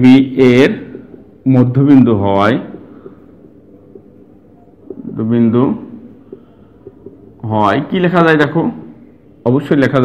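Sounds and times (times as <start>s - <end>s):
marker ticking on whiteboard: 0.2s - 8.6s.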